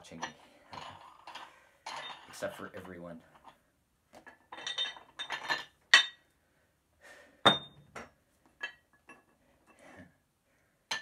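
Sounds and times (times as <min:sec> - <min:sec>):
metal weight plates clinking: 0:00.0 - 0:03.6, 0:04.4 - 0:06.2.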